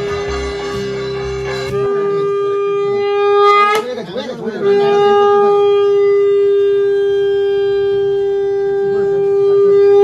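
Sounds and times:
conch shell blown: 0:00.0 - 0:10.0.

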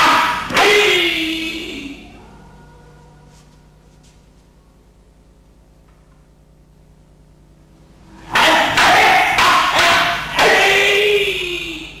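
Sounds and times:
loud martial arts shouts: 0:00.0 - 0:02.2, 0:08.2 - 0:12.0.

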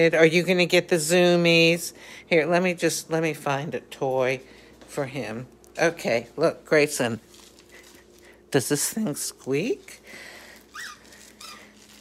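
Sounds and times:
dog toy squeaking: 0:10.7 - 0:11.6.

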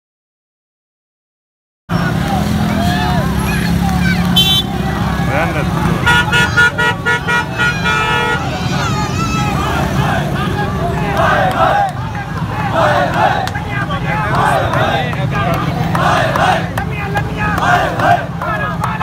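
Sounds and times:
crowd voices: 0:01.9 - 0:19.0
street traffic engines: 0:01.9 - 0:19.0
vehicle horn honking: 0:04.4 - 0:04.8, 0:06.0 - 0:08.6.

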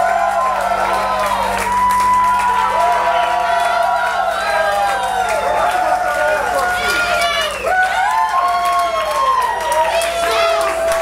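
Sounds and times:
audience cheering and shouting: 0:00.0 - 0:11.0
people whooping: 0:00.0 - 0:11.0.

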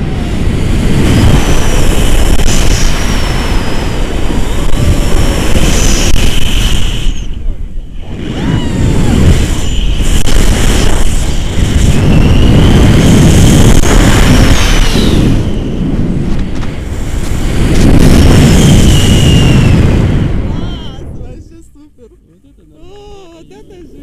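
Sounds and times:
wind buffeting microphone: 0:00.0 - 0:21.8
high whistling tones: 0:05.7 - 0:10.3, 0:11.2 - 0:13.2, 0:14.4 - 0:16.0, 0:18.5 - 0:20.3.

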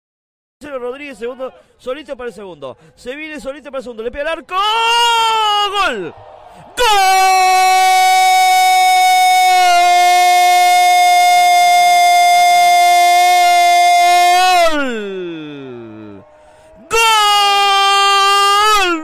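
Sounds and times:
person taking a breath: 0:02.8 - 0:03.0, 0:16.3 - 0:16.8.

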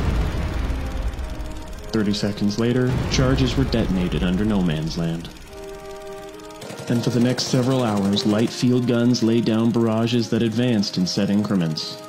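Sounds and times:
deep low rumble: 0:00.0 - 0:05.5
background music: 0:00.0 - 0:12.0.

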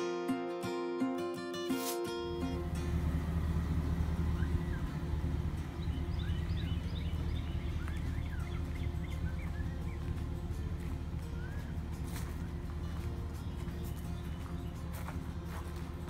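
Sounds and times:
steady low hum: 0:02.3 - 0:16.0
small birds chirping: 0:02.5 - 0:16.0.

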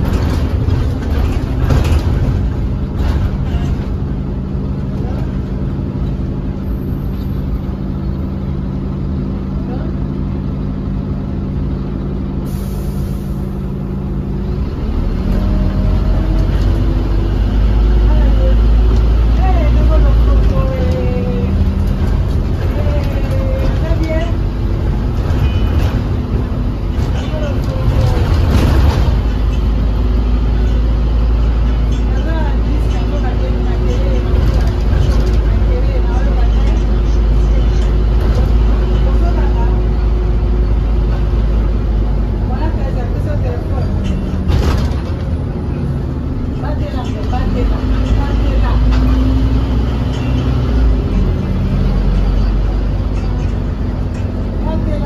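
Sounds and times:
bus engine humming: 0:00.0 - 0:55.0
road rumble: 0:00.0 - 0:55.0.

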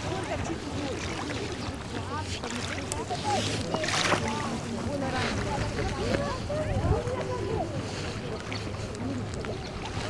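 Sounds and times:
small waves on shore: 0:00.0 - 0:10.0.

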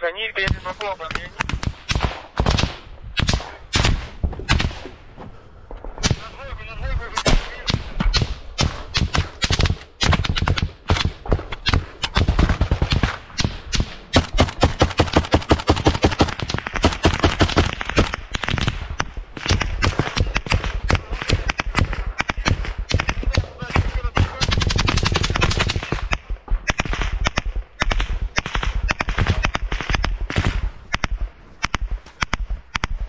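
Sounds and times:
automatic gunfire: 0:07.2 - 0:33.0.

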